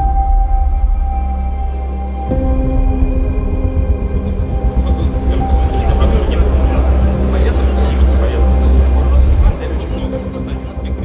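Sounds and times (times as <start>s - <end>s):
ambient music tones: 0.0s - 11.0s
heavy low drone: 0.0s - 11.0s
indistinct crowd chatter: 2.2s - 11.0s.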